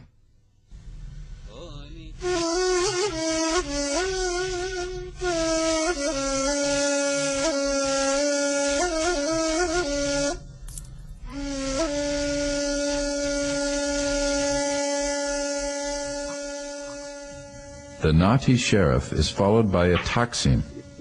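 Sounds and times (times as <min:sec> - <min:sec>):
breathy reed flute melody: 0:02.2 - 0:10.5, 0:11.2 - 0:18.2.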